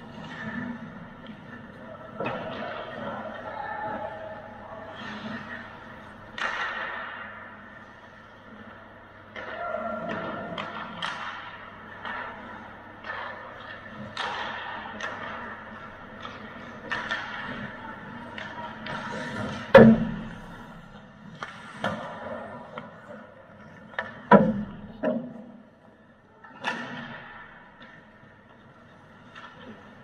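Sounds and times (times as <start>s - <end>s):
hockey sticks and puck clacking: 0.0s - 30.0s
skates scraping on ice: 10.2s - 24.3s.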